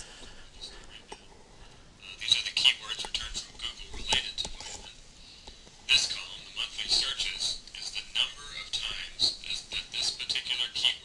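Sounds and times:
faint speech through computer speakers: 0:00.5 - 0:01.3, 0:02.0 - 0:05.1, 0:05.8 - 0:11.0.

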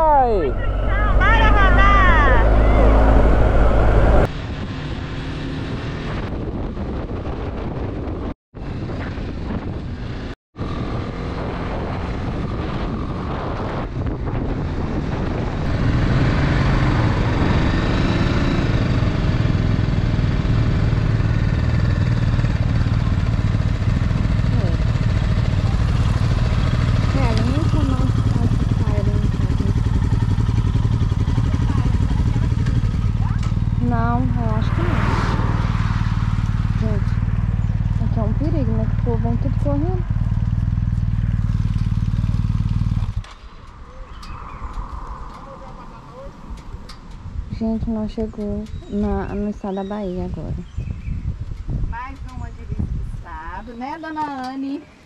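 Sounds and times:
wind noise: 0:00.0 - 0:53.8
motorcycle riding: 0:00.0 - 0:55.0
motorcycle engine idling: 0:19.5 - 0:34.7, 0:36.0 - 0:52.8.

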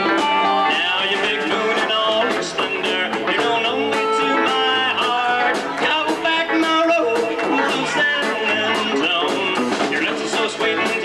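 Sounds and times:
electric guitar: 0:00.0 - 0:11.0
steady drum beat: 0:00.0 - 0:11.0.

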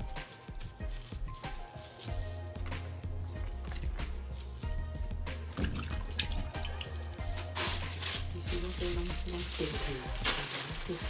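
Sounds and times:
plastic wrapping rustling: 0:00.0 - 0:04.9, 0:05.6 - 0:11.0
background music: 0:00.0 - 0:11.0
tap water running into sink: 0:05.6 - 0:07.0.

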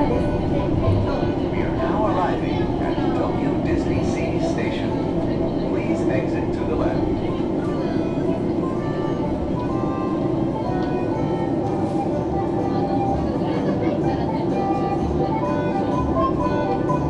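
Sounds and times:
indistinct voices: 0:00.0 - 0:11.7
monorail running hum: 0:00.0 - 0:17.0
music: 0:00.0 - 0:17.0.

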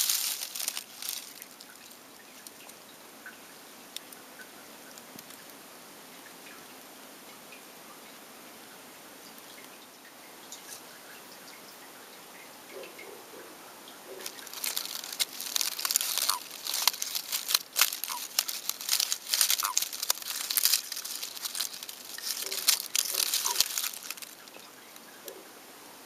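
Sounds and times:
crackling and rustling: 0:00.0 - 0:02.8, 0:04.9 - 0:05.6, 0:14.1 - 0:25.4.

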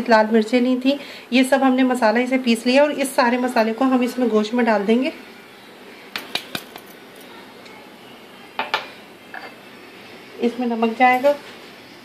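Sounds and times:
glass bowls clinking: 0:08.6 - 0:09.6.

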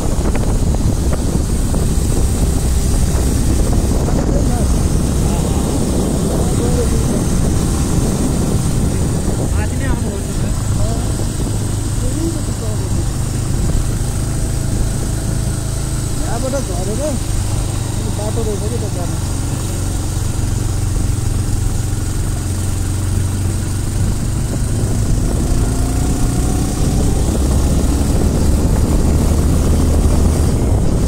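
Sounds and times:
road noise: 0:00.0 - 0:31.0
vehicle engine drone: 0:00.0 - 0:31.0
faint voices: 0:04.0 - 0:07.7.

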